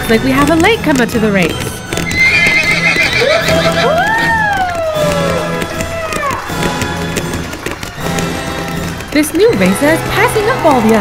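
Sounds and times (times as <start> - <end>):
horse neighing: 2.0 - 6.6.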